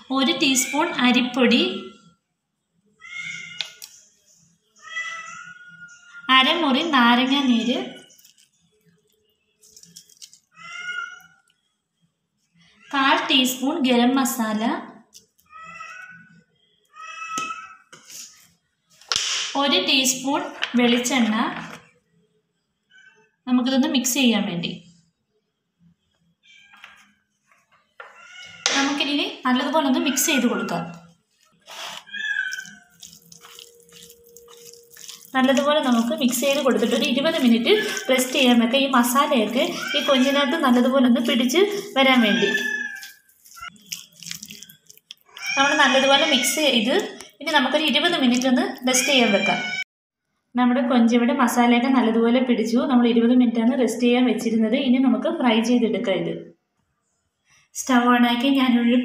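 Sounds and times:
cat meowing: 3.0 - 3.8, 4.8 - 6.3, 10.5 - 11.4, 15.5 - 16.3, 16.9 - 17.8, 28.2 - 28.8, 31.7 - 36.1, 36.9 - 38.6, 39.2 - 40.6, 41.2 - 43.7, 45.3 - 46.6
wet squelching of prawns: 7.8 - 10.6, 30.2 - 47.2, 48.2 - 49.2.

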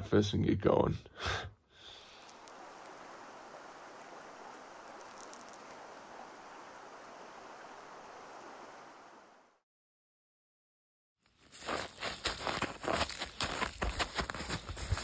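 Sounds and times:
shallow creek flowing: 2.0 - 9.6.

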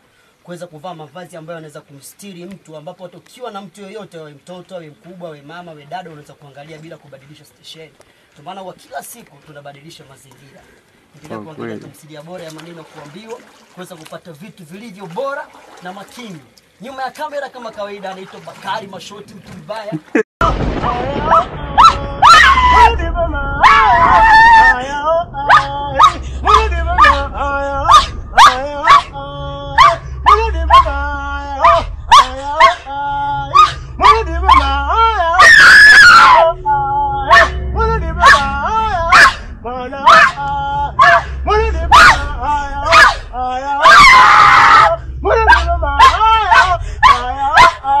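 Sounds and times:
person screaming: 23.6 - 24.8, 33.5 - 37.5, 40.1 - 47.7
person yelping: 33.5 - 36.5, 41.0 - 42.2, 42.9 - 47.8.

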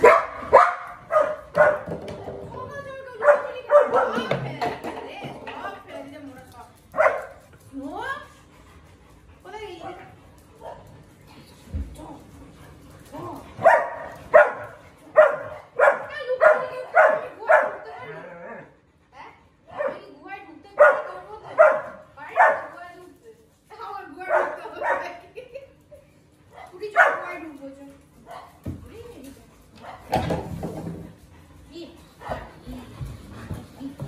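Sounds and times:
dogs barking: 0.0 - 2.0, 3.2 - 4.3, 6.9 - 7.4, 13.6 - 18.2, 19.7 - 20.1, 20.8 - 22.8, 24.2 - 25.2, 26.5 - 27.4.

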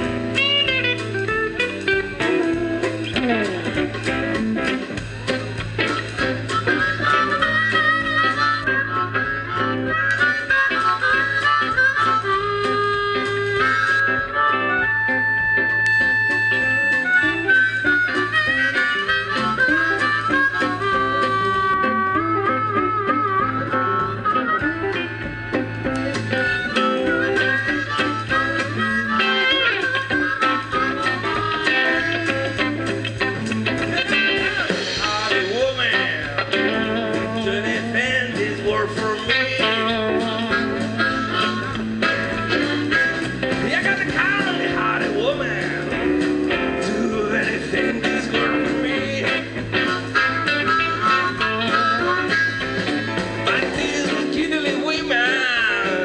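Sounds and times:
blues rock band playing: 0.0 - 56.0
harmonica lead lines: 0.0 - 56.0.

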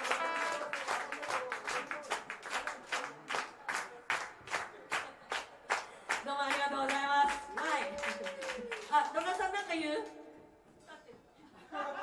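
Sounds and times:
audience clapping in unison: 0.0 - 9.6.

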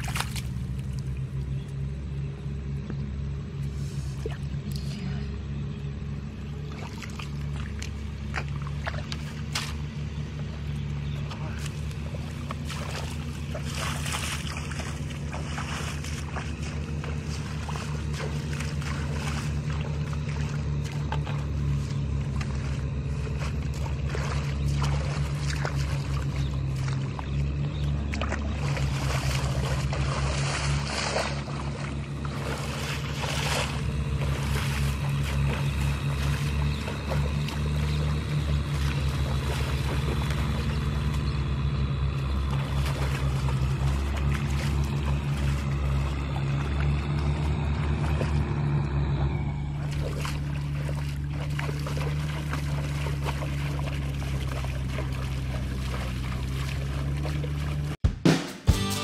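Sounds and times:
splashing through shallow water: 0.0 - 58.0
hand tractor engine running: 6.5 - 58.0.

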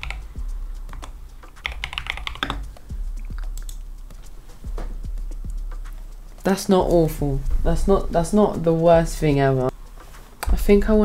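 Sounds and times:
typing on computer keyboard: 0.0 - 0.2, 0.9 - 2.7.

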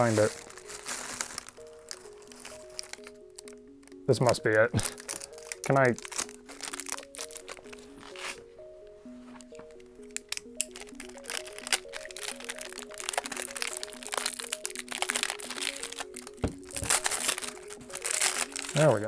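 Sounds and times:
plastic packaging crinkling: 0.0 - 8.4, 9.4 - 19.0
background music melody: 0.0 - 19.0.

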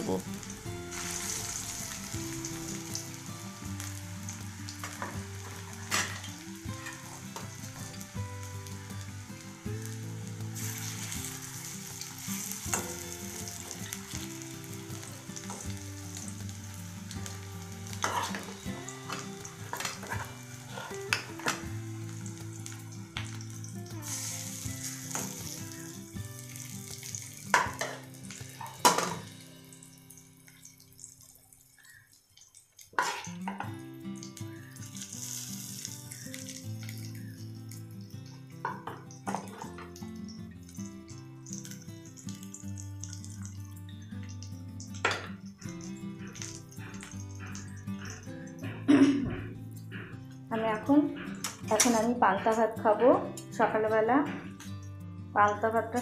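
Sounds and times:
fritters sizzling in hot oil: 0.0 - 48.2.

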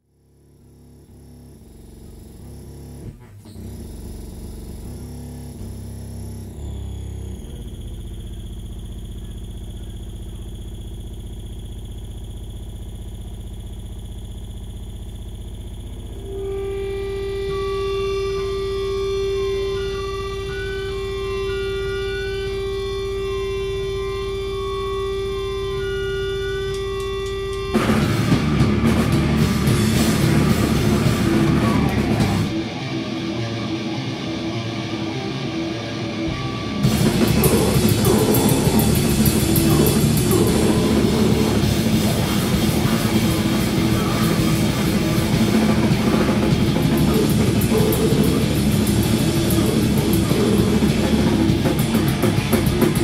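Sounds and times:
distorted guitar drone: 0.0 - 53.0
amplifier feedback tone: 0.3 - 53.0.

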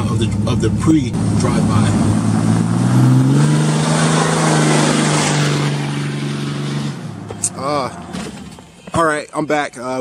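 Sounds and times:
diesel pickup truck driving past: 1.1 - 8.6.

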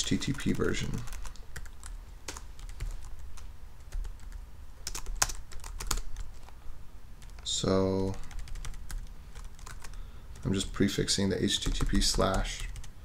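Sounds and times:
typing on computer keyboard: 0.0 - 6.5, 8.2 - 10.6, 11.6 - 12.9.

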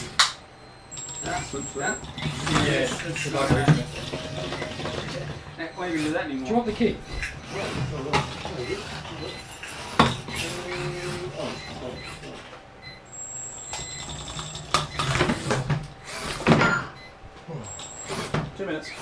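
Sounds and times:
people talking: 1.2 - 9.4, 10.3 - 12.4, 18.6 - 19.0.

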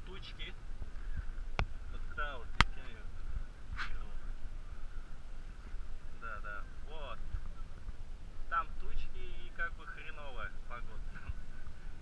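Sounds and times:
low wind rumble: 0.0 - 12.0
water around boat: 0.0 - 12.0.

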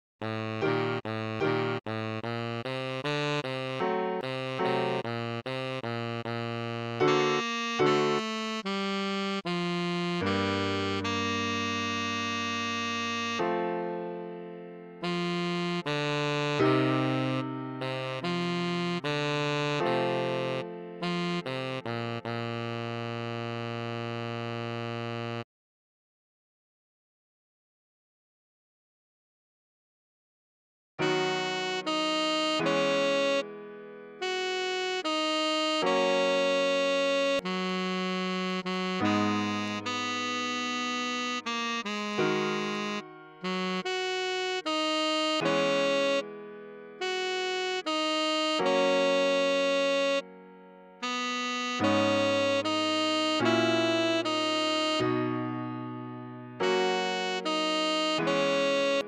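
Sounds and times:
sustained keyboard chords: 0.2 - 25.4, 31.0 - 59.0
synthesized tenor saxophone: 0.2 - 25.5, 31.0 - 59.0.

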